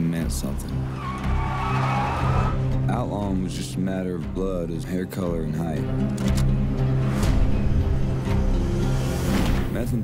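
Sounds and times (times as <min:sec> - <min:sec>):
tires squealing: 0:00.7 - 0:02.7.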